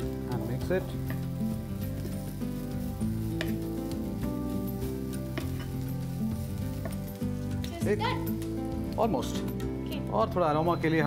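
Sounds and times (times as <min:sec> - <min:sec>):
background music: 0:00.0 - 0:11.0
food sizzling in frying pan: 0:00.0 - 0:11.0
spatula scraping pan: 0:00.9 - 0:07.1.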